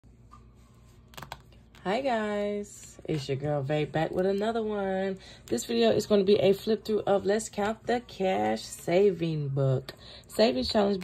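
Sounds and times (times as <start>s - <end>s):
woman speaking: 1.8s - 11.0s.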